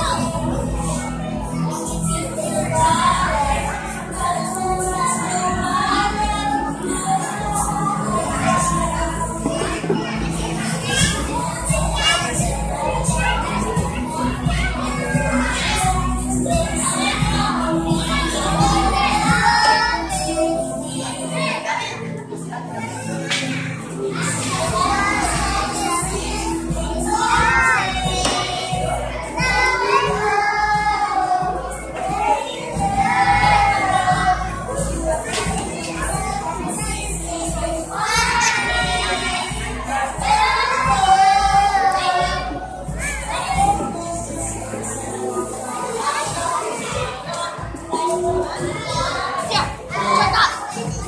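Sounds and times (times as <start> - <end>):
background music: 0.0 - 51.0
children chattering: 0.0 - 51.0
children shouting excitedly: 44.9 - 51.0.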